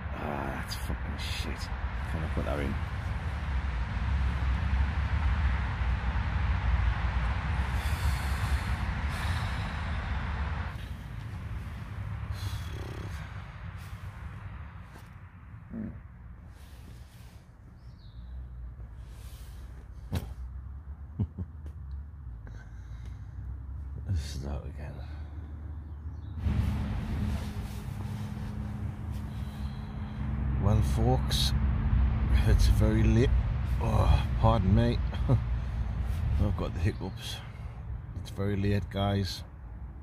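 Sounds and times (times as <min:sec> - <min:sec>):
distant motorway traffic roar: 0:00.0 - 0:40.0.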